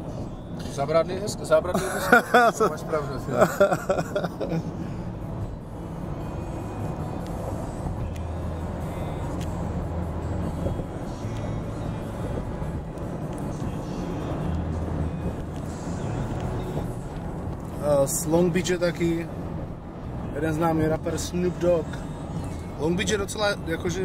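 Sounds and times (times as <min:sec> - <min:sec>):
car road and engine noise: 0:00.0 - 0:24.0
music playing: 0:01.7 - 0:24.0.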